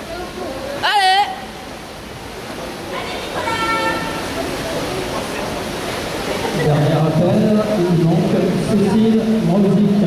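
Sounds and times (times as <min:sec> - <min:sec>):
water churned by swimmers: 0:00.0 - 0:10.0
spectators' voices: 0:02.4 - 0:07.1.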